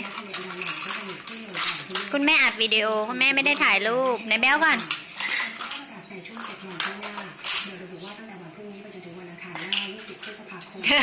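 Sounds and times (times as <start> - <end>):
plastic toy dishes clattering: 0.0 - 7.7.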